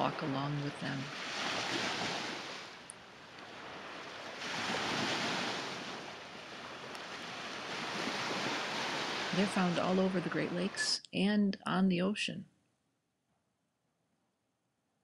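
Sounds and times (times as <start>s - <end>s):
small waves washing up beach: 0.0s - 10.8s.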